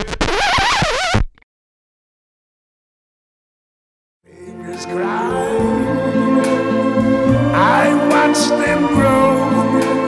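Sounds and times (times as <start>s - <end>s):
music: 4.2s - 10.0s
person singing with heavy vibrato: 4.3s - 10.0s.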